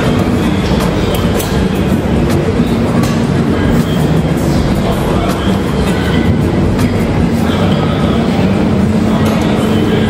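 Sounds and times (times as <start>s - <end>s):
gym room rumbling: 0.0s - 10.0s
low hum: 0.0s - 10.0s.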